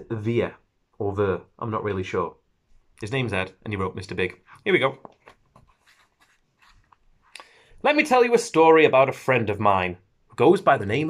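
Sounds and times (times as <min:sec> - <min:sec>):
book pages rustling: 0:04.8 - 0:07.4.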